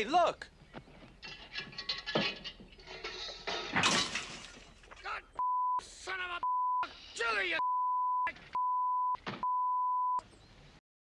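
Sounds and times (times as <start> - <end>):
crash of something breaking: 3.6 - 4.8
censor bleep: 5.4 - 5.8, 6.4 - 6.8, 7.6 - 10.2.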